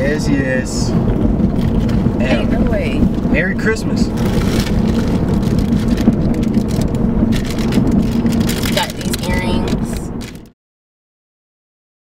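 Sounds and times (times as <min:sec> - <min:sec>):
road noise inside car: 0:00.0 - 0:10.6
plastic bag rustling: 0:04.1 - 0:10.5.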